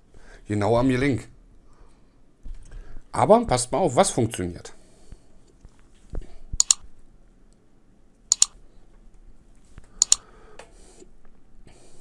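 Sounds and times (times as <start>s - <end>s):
smartwatch button clicks: 6.6s - 6.8s, 8.3s - 8.5s.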